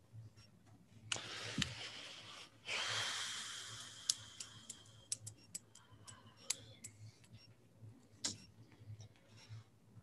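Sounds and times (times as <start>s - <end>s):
low electrical hum: 0.0s - 10.0s
small clicks and ticks: 4.0s - 7.4s.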